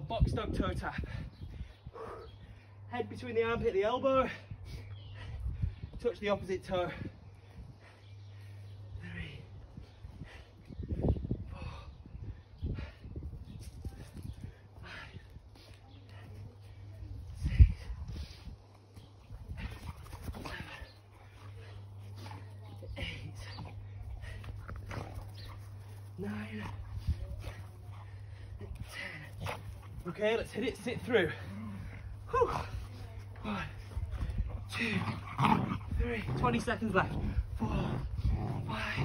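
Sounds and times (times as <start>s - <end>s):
steady low hum: 4.3s - 39.0s.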